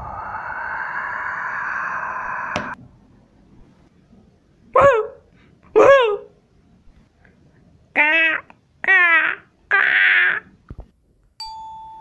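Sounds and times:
cartoon crow cawing: 8.0s - 10.4s
chime-like ding: 11.4s - 12.0s.

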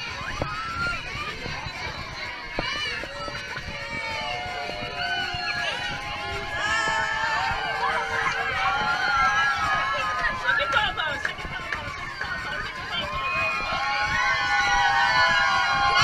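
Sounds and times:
children cheering and shouting: 0.0s - 16.0s.

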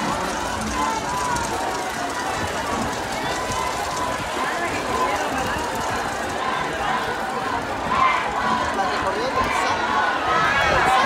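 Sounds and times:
indistinct talking voices: 0.0s - 11.0s
steady background noise: 0.0s - 11.0s.

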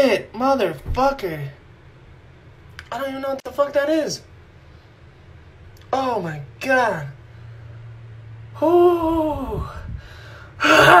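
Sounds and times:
man's drawn-out ooh: 8.6s - 9.9s, 10.6s - 11.0s.

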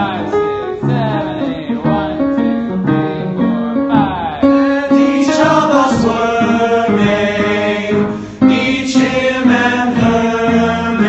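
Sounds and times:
men singing wordless notes: 0.0s - 11.0s.

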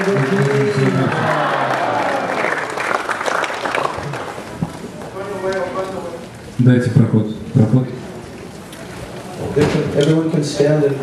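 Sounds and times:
audience applauding: 0.0s - 6.0s
crowd voices: 0.0s - 11.0s.

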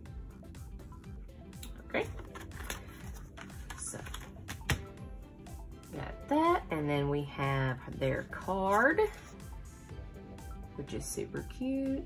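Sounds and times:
paper rustling and tapping: 2.2s - 4.9s.

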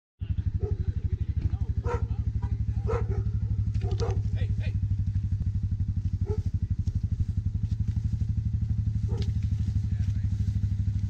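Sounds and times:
engine idling: 0.2s - 11.0s.

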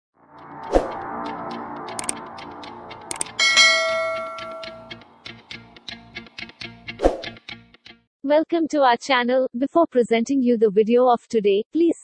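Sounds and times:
bell-like chime: 3.1s - 5.0s.

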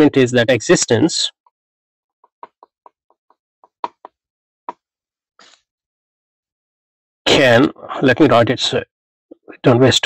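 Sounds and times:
stylus tapping on glass screen: 2.2s - 4.2s.

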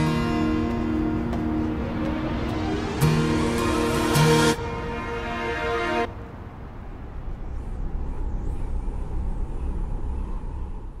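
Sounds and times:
low rumbling noise: 1.0s - 11.0s.

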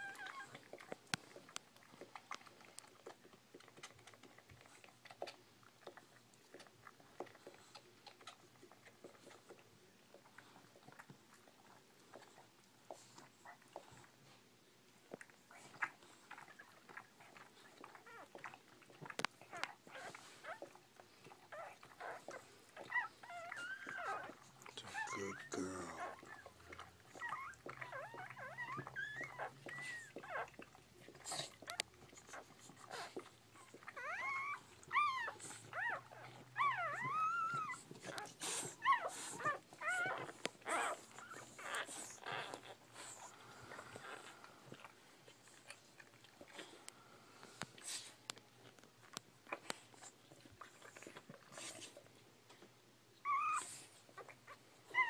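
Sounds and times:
puppies squeaking and whimpering: 0.0s - 5.4s, 15.5s - 46.8s, 53.2s - 55.0s
puppies suckling clicks: 0.0s - 55.0s.

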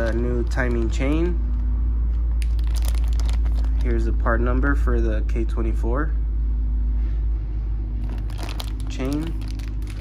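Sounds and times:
plastic bag crinkling: 0.0s - 1.6s, 2.3s - 4.2s, 8.0s - 10.0s
steady low hum: 0.0s - 10.0s.

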